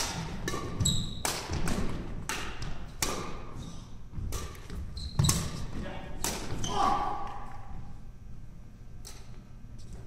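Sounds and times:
rackets hitting shuttlecock: 0.0 - 7.6.

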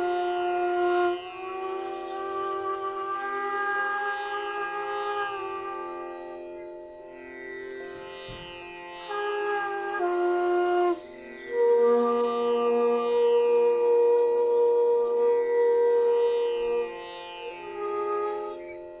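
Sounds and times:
bamboo flute long held notes: 0.0 - 19.0.

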